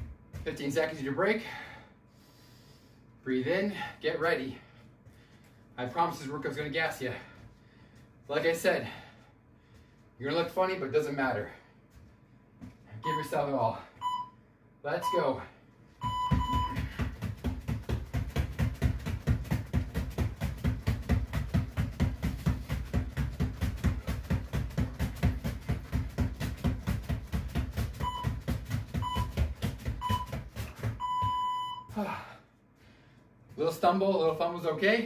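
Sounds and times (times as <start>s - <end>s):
short electronic beeps: 13.0s - 13.4s, 14.0s - 14.4s, 15.0s - 15.4s, 16.0s - 16.8s, 28.0s - 28.3s, 29.0s - 29.4s, 30.0s - 30.3s, 31.0s - 31.9s
feet thudding on hard floor: 16.0s - 31.6s.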